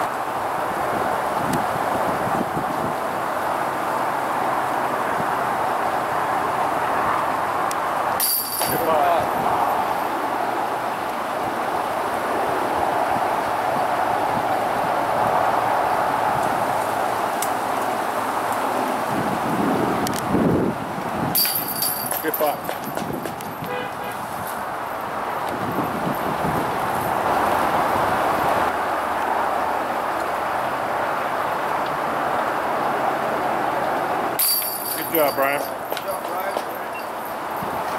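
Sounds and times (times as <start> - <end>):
strong wind: 0.0 - 37.9
sharp clatters: 8.2 - 9.2, 21.4 - 23.7, 34.4 - 37.4
people's voices: 8.6 - 9.6, 34.9 - 37.2.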